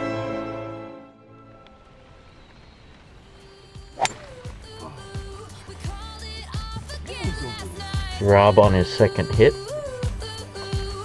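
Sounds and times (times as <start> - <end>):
music: 0.0 - 2.0, 3.3 - 11.0
golf club striking ball: 3.9 - 4.8.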